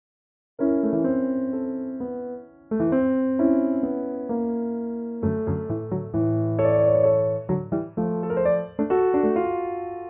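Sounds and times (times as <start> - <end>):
piano chords: 0.6 - 10.0.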